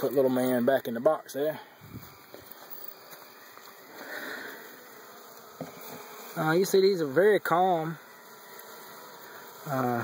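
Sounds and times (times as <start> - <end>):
honeybees humming: 0.0 - 10.0.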